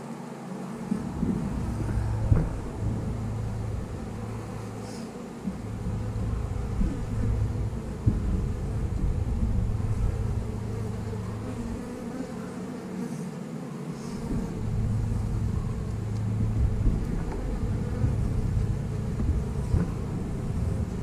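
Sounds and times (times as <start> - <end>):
honey bees buzzing: 0.0 - 21.0.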